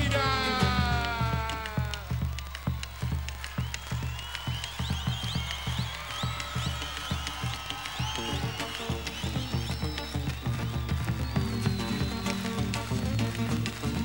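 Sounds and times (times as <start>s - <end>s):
sticks beating drum skin and rim: 0.0s - 5.2s.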